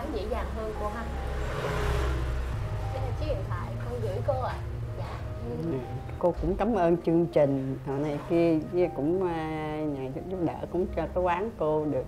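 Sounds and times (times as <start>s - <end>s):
vehicle passing by: 0.0s - 9.0s.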